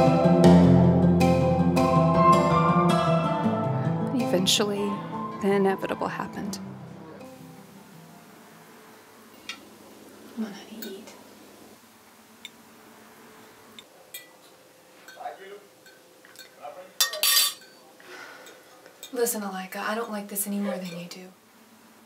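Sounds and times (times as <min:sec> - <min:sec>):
glass and tableware clinking: 0:10.8 - 0:11.1, 0:14.1 - 0:19.2, 0:20.0 - 0:21.2
tableware clatter: 0:14.1 - 0:17.8.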